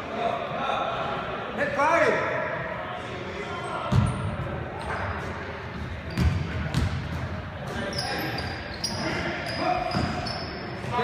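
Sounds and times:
echoing gym noise: 0:00.0 - 0:11.0.

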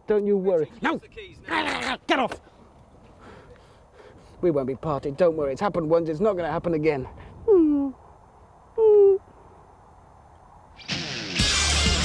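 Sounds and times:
short high-pitched vocal sounds: 0:08.8 - 0:09.3.

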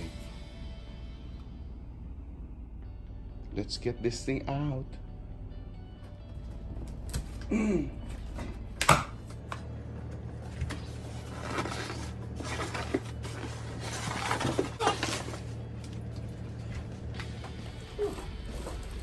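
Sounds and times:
cardboard scraping: 0:10.4 - 0:15.6.

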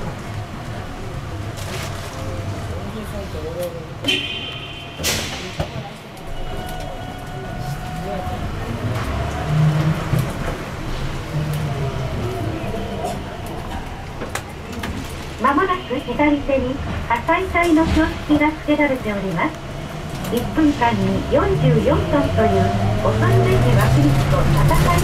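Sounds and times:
bus rumbling: 0:00.0 - 0:25.0
murmur of voices: 0:05.0 - 0:25.0.

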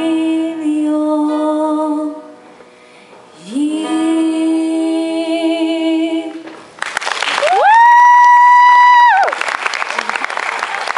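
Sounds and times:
audience applauding: 0:06.8 - 0:10.9.

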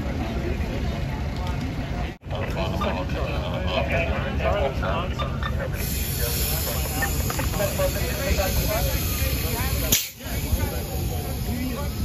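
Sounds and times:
faint voices: 0:00.0 - 0:12.0
low street rumble: 0:00.0 - 0:12.0.

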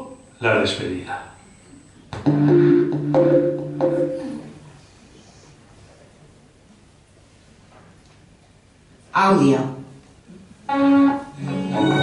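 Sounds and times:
instrumental music over loudspeakers: 0:02.2 - 0:04.6, 0:10.8 - 0:12.0.

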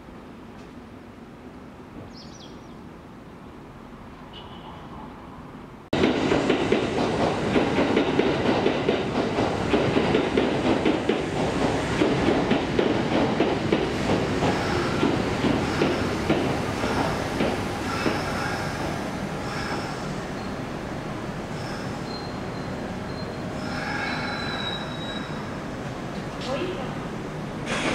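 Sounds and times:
train wheels clattering over rail joints: 0:06.0 - 0:19.8, 0:27.6 - 0:27.9
train wheel squeal: 0:21.5 - 0:25.6.

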